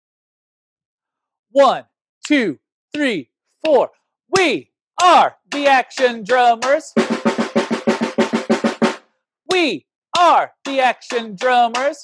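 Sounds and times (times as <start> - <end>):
fast drum roll: 5.5 - 9.0.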